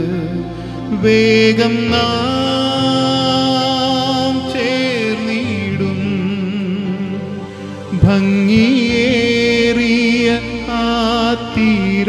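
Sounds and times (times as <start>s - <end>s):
electronic keyboard accompaniment: 0.0s - 12.0s
man singing a hymn: 0.0s - 12.0s.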